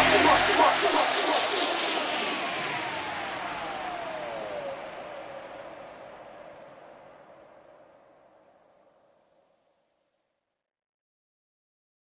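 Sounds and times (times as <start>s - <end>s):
background music: 0.0s - 4.2s
downward-sliding tone: 0.0s - 5.3s.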